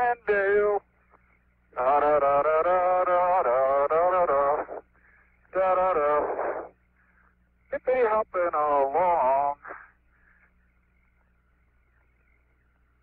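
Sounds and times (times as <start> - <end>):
man singing over radio: 0.0 - 6.8, 7.7 - 10.0
steady low radio hum: 0.0 - 13.0.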